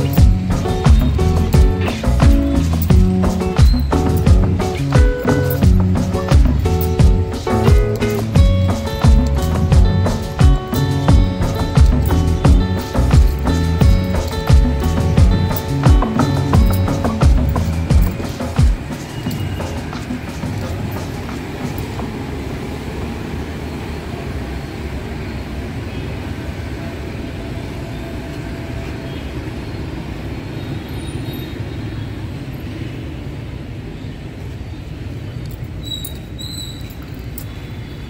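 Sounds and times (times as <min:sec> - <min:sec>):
low outdoor rumble: 0:00.0 - 0:25.6.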